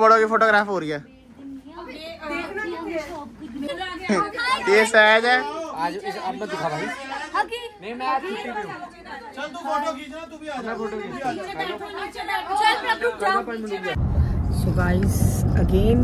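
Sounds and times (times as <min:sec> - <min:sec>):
people talking over one another: 0:01.9 - 0:14.0.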